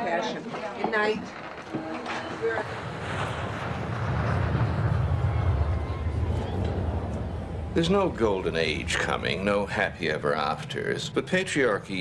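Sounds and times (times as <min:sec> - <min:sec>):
jet engine rumble: 0:00.8 - 0:12.0.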